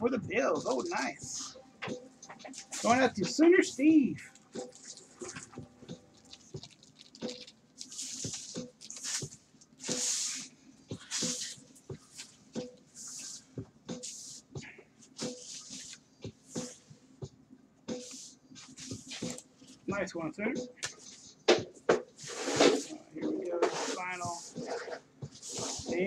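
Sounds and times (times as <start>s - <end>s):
card sliding swishes: 8.0s - 14.4s, 22.2s - 23.0s, 23.6s - 26.0s.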